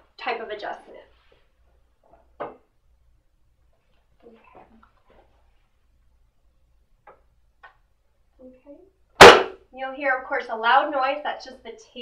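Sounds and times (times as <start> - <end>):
sharp knock of table: 9.2 - 9.6.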